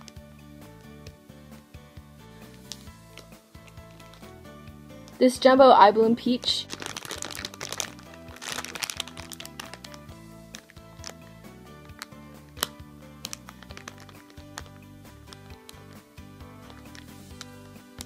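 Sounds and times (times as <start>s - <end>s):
background music with held notes: 0.0s - 18.0s
plastic bag crinkling: 6.5s - 16.0s, 16.6s - 18.0s.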